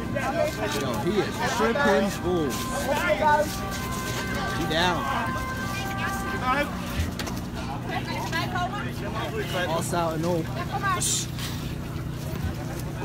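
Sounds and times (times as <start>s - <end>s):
people shouting and crying out: 0.0s - 9.7s.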